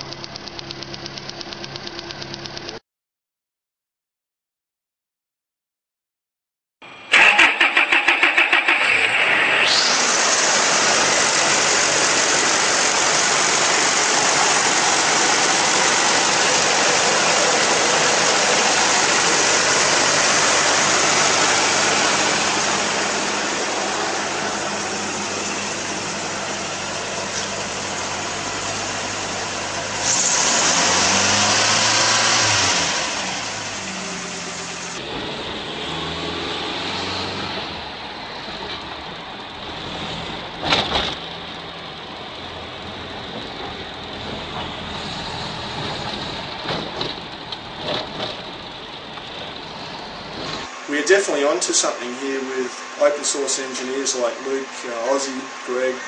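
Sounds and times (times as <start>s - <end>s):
car engine cranking and running: 0.0s - 2.8s, 6.9s - 56.0s.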